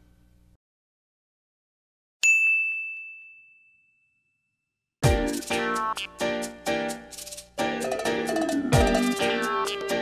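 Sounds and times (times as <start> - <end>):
bright ding: 2.2 - 4.6.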